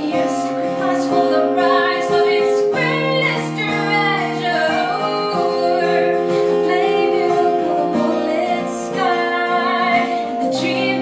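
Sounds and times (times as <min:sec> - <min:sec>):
acoustic guitar: 0:00.0 - 0:11.0
piano: 0:00.0 - 0:11.0
woman singing a pop ballad: 0:00.0 - 0:11.0.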